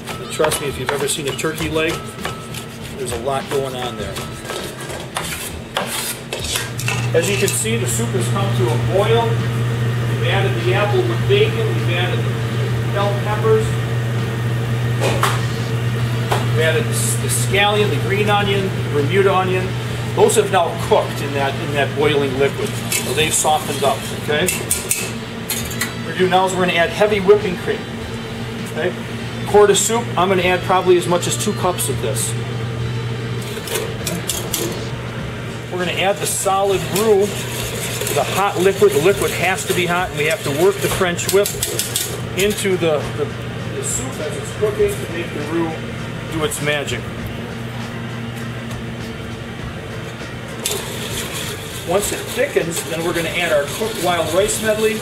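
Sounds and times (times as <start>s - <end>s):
whisk scraping metal pot: 0.0s - 8.7s, 16.6s - 27.5s, 35.8s - 43.0s, 50.6s - 55.0s
steady low hum: 0.0s - 55.0s.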